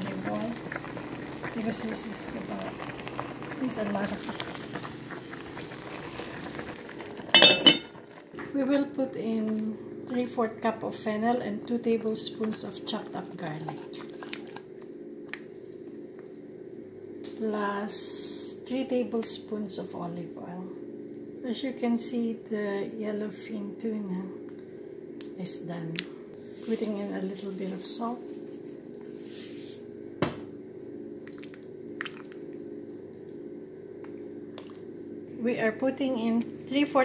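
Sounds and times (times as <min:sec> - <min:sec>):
steady low hum: 0:00.0 - 0:37.0
soft liquid squishes: 0:31.2 - 0:35.2.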